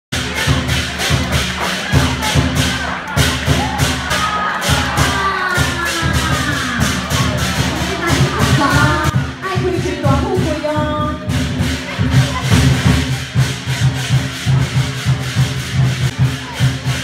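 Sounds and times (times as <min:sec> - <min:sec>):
drum beating: 0:00.1 - 0:17.0
rapid cymbal clashes: 0:00.1 - 0:17.0
crowd voices and cheers: 0:00.2 - 0:17.0.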